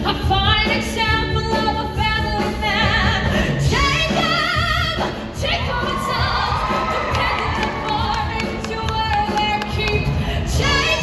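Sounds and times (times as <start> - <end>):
musical theatre singing: 0.0 - 11.0.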